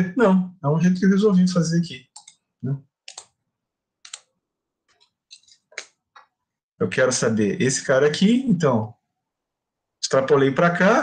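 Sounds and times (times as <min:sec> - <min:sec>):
mouse or keyboard clicks: 0:02.2 - 0:02.4, 0:03.1 - 0:03.4, 0:04.0 - 0:04.3, 0:04.9 - 0:06.3.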